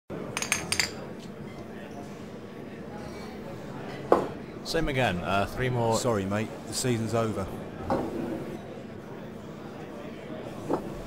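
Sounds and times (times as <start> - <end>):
glass bottles clinking: 0.4 - 1.0.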